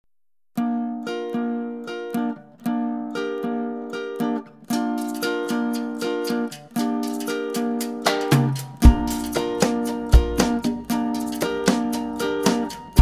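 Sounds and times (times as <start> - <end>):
plucked guitar chords: 0.6 - 13.0.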